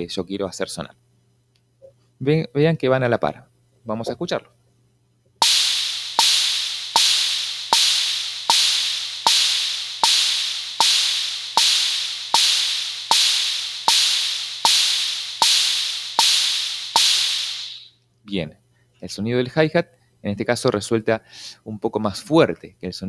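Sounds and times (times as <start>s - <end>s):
drum machine bongo knock: 5.4s - 17.9s
drum machine open hi-hat: 5.4s - 17.9s.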